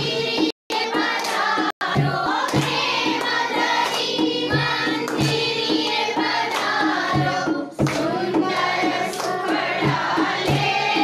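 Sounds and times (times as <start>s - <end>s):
group singing a devotional song: 0.0s - 11.0s
regular beat: 0.0s - 11.0s.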